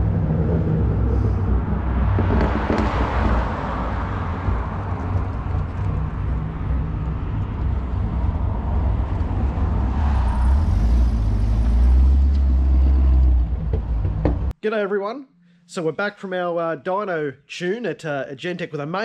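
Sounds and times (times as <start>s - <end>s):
motor vehicle rumble: 0.0s - 14.6s.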